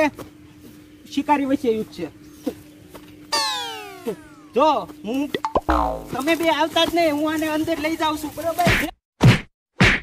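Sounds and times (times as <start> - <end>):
falling pitch sound effect: 3.3 - 4.5, 5.5 - 6.2
springy boing: 5.4 - 6.2.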